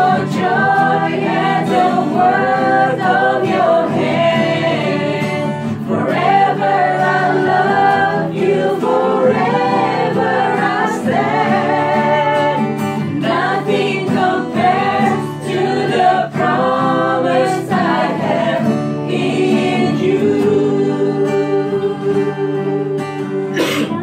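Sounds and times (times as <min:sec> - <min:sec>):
group singing a worship song: 0:00.0 - 0:23.8.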